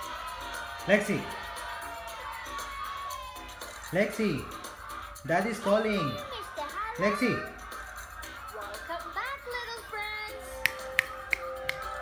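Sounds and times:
finger snaps: 10.6 - 12.0.

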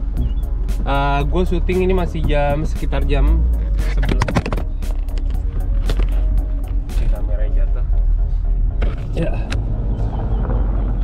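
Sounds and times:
background music: 0.0 - 11.0
car engine rumble: 0.0 - 11.0
camera handling knocks: 4.1 - 6.1.

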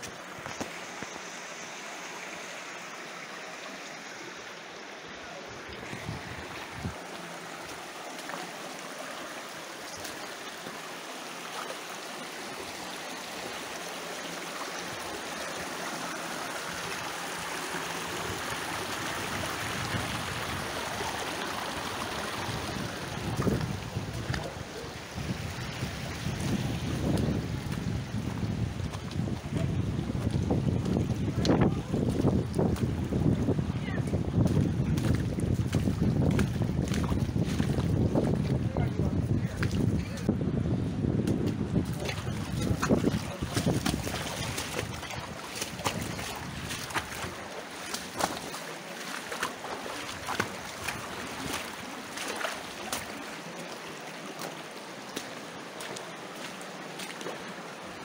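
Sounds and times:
creek running over stones: 0.0 - 58.0
wind rumbling on microphone: 5.6 - 7.1, 18.2 - 47.5.

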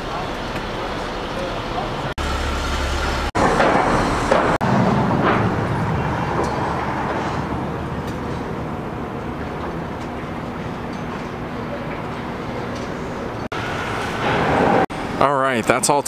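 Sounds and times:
city street traffic rumble: 0.0 - 16.0.

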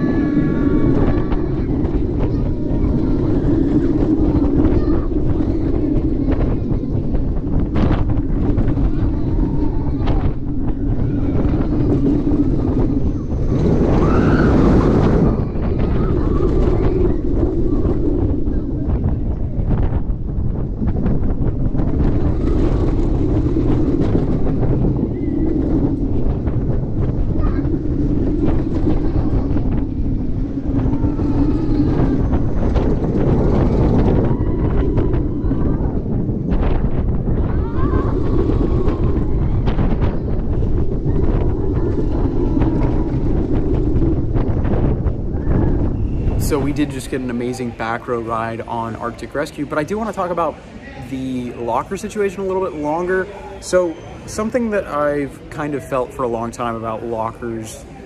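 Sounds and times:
riders' voices: 0.0 - 44.8, 45.6 - 58.0
roller coaster rumble: 0.0 - 58.0
wind buffeting microphone: 0.0 - 58.0.

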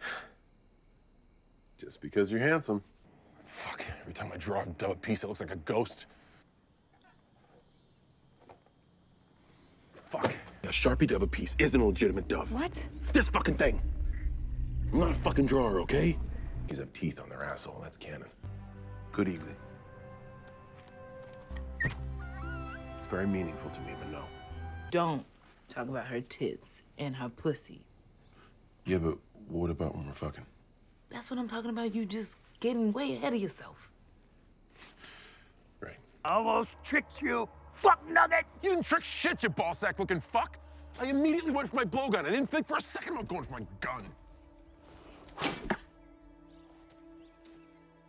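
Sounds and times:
background music: 18.4 - 25.0, 36.4 - 48.0
wavering animal squeal: 21.8 - 23.0.

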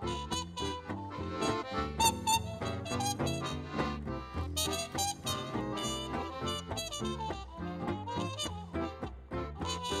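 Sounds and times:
accordion melody: 0.0 - 10.0
guitar chords chugging: 0.0 - 10.0
plucked upright bass: 0.0 - 10.0.

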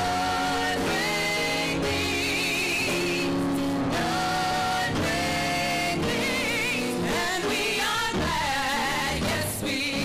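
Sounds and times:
women singing gospel: 0.0 - 10.0.

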